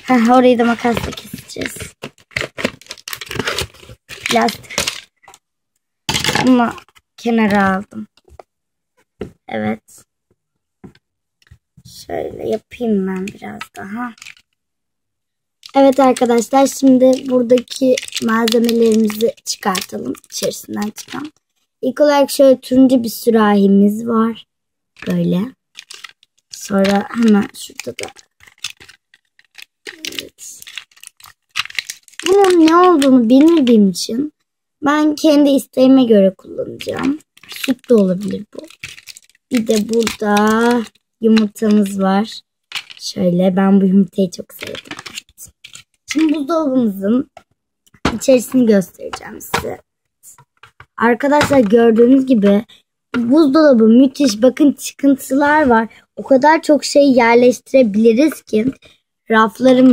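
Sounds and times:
plastic crinkling: 0.0 - 5.4, 13.0 - 14.6, 15.6 - 21.4, 25.0 - 34.1, 36.6 - 42.0, 42.7 - 43.3, 44.3 - 46.6.

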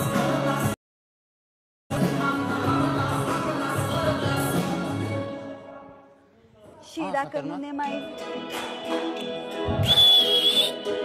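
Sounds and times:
dance music: 0.0 - 0.8, 1.9 - 6.1
shrill whistle: 9.7 - 10.9.

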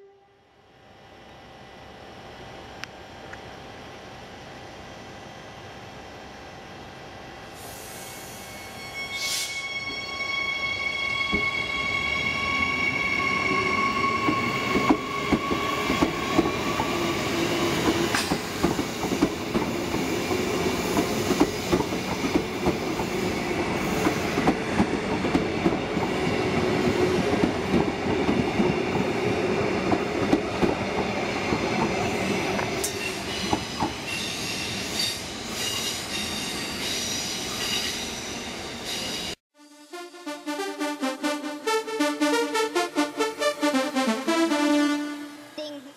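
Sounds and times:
high squealing tone: 8.3 - 17.3
train rumble: 11.2 - 36.4
train wheels clicking over rail joints: 17.8 - 25.8.

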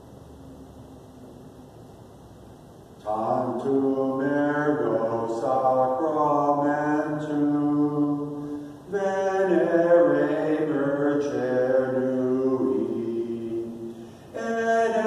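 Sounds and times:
low voice chanting: 3.0 - 15.0.

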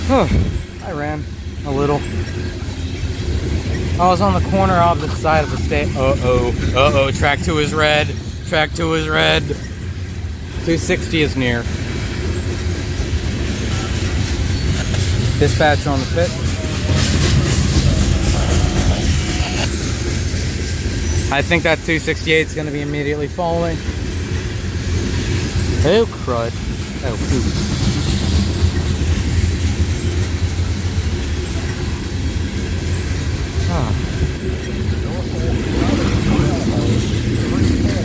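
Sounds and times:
freight train wheels rumbling on rails: 0.0 - 38.0.

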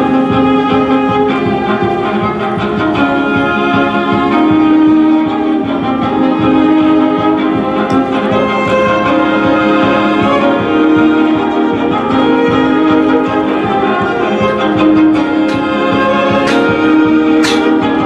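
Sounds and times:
backing track from speaker: 0.0 - 18.0
electric violin melody: 0.0 - 18.0.

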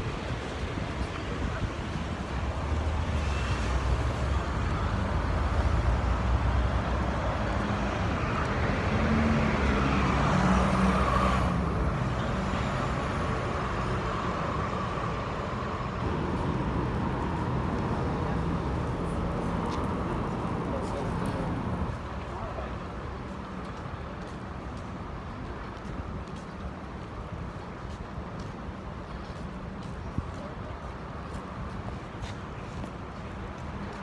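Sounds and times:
bus engine passing by: 0.0 - 24.2
street traffic: 0.0 - 34.0.

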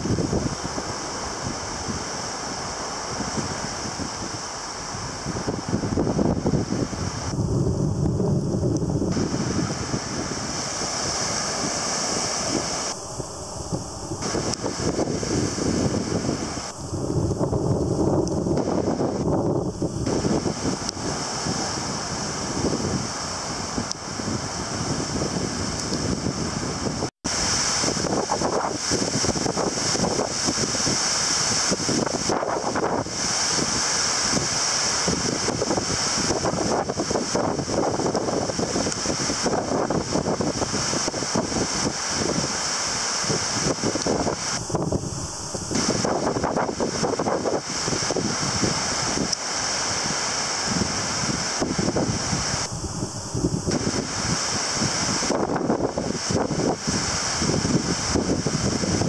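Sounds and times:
gusty wind buffeting microphone: 0.0 - 59.0
surf breaking on beach: 0.0 - 59.0.

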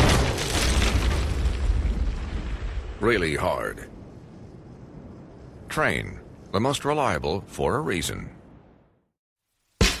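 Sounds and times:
explosion blast: 0.0 - 3.0
deep rumble: 0.1 - 6.6.

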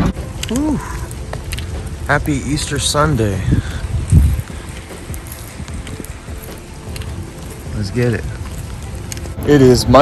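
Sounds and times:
rain on wet pavement: 0.0 - 10.0
wind buffeting microphone: 0.0 - 10.0.

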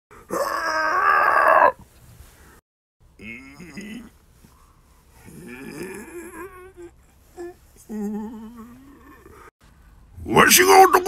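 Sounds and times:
man shouting: 10.3 - 11.0.

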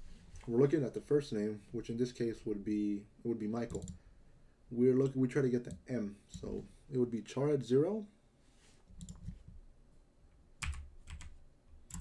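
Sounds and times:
computer keyboard clicks: 3.7 - 4.0, 9.0 - 9.4, 10.6 - 12.0.

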